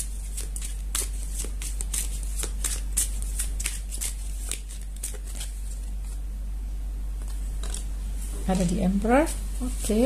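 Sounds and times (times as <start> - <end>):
cards being shuffled: 0.0 - 6.2.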